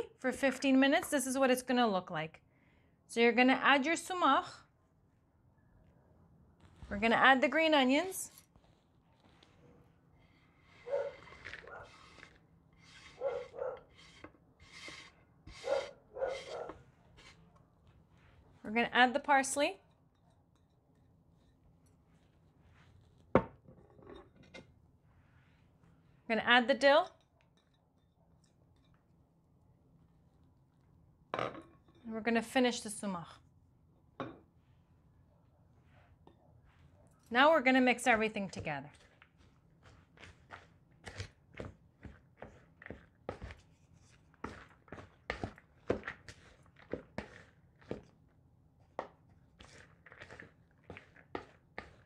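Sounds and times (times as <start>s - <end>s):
wooden spoon scraping a bowl: 8.2s - 9.6s, 10.2s - 17.5s, 38.3s - 48.2s, 48.9s - 52.0s.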